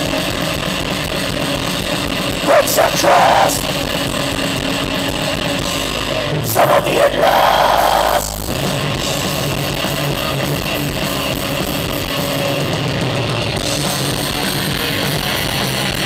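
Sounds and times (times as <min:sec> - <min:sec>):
live thrash metal band: 0:00.0 - 0:16.0.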